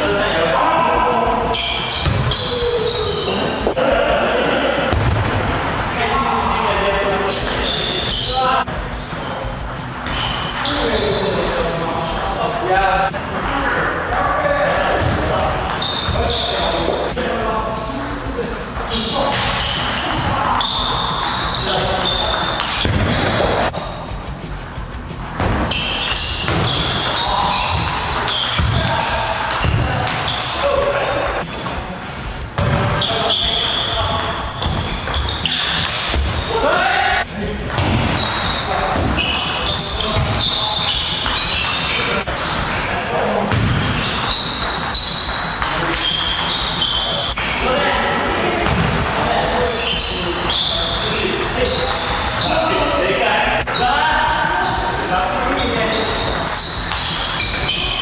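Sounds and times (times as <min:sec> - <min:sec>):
table tennis ball rally: 0:00.0 - 0:31.9, 0:32.5 - 0:58.0
music playing: 0:00.0 - 0:58.0.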